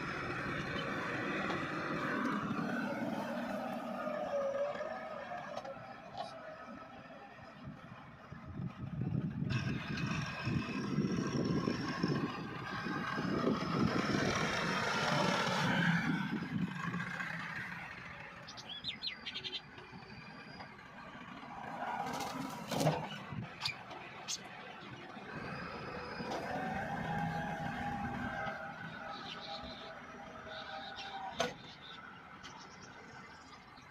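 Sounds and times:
tractor diesel engine under load: 0.0 - 33.9
bird chirping: 18.4 - 20.7, 28.9 - 33.9.

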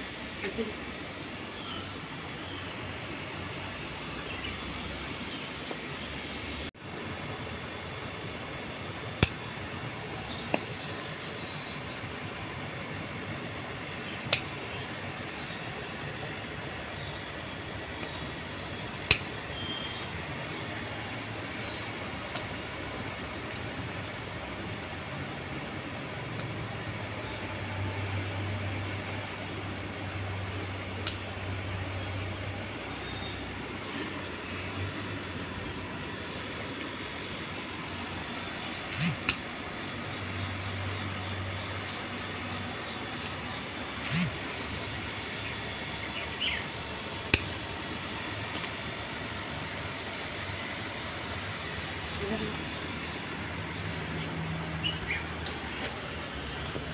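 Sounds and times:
outdoor background rumble: 0.0 - 56.9
scissors snipping a stem: 14.3 - 14.5, 19.1 - 19.3, 39.0 - 39.5, 47.3 - 47.6.

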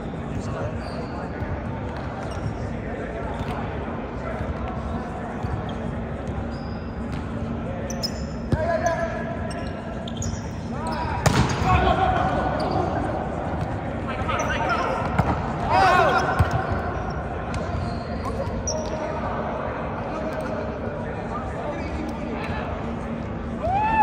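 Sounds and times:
sneakers squeaking: 0.0 - 19.4.

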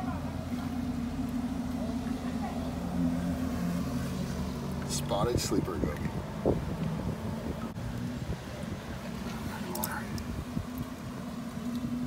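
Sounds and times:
motor vehicle engine rumbling: 0.0 - 12.0.

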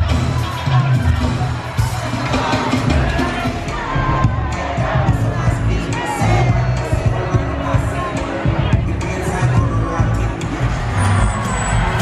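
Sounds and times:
crowd cheering and singing along: 0.0 - 12.0
live band music: 0.0 - 12.0.

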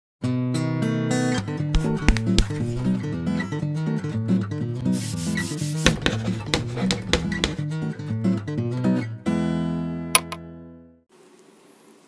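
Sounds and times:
acoustic guitar music: 0.2 - 11.0
chalk scratching on chalkboard: 1.8 - 3.0, 4.8 - 7.6.

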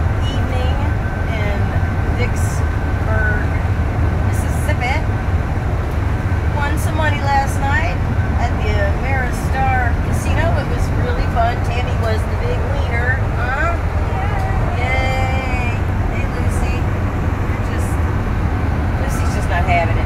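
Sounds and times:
road and engine rumble: 0.0 - 20.0.

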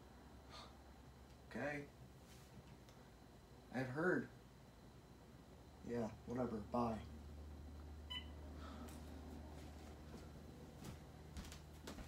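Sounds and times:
low steady hum: 0.0 - 12.0
mobile phone beep: 8.1 - 8.4.

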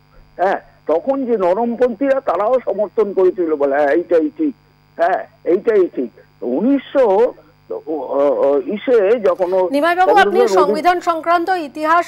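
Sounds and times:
steady electrical hum: 0.0 - 12.0
person talking over telephone: 10.0 - 11.0.

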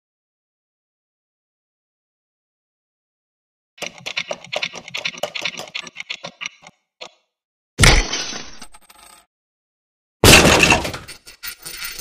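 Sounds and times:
small clicks: 3.8 - 7.3.

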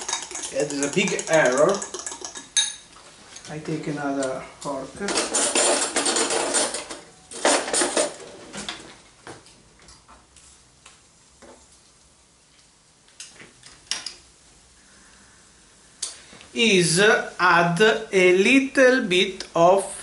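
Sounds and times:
utensils and pots clinking: 0.0 - 3.6, 5.0 - 8.4
metal cutlery rattling: 5.1 - 8.2.

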